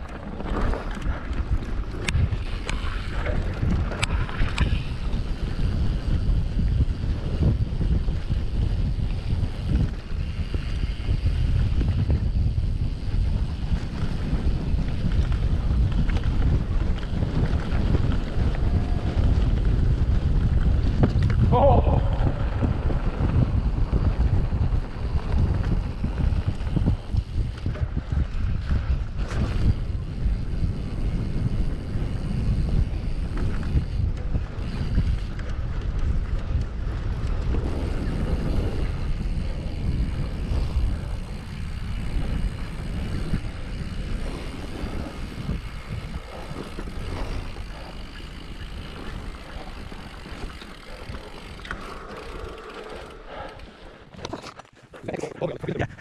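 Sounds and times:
mountain bike rumbling and rattling: 0:00.0 - 0:56.0
wind buffeting microphone: 0:00.0 - 0:56.0.

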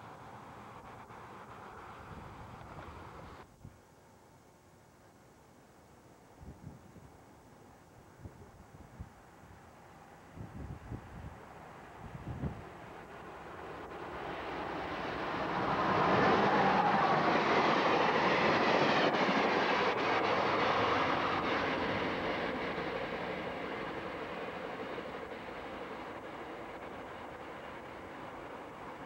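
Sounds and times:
train wheels on rail: 0:00.0 - 0:03.4, 0:10.6 - 0:29.0.

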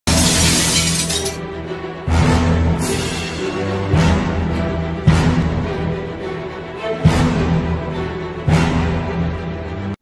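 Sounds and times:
glass shattering crash: 0:00.1 - 0:01.4.

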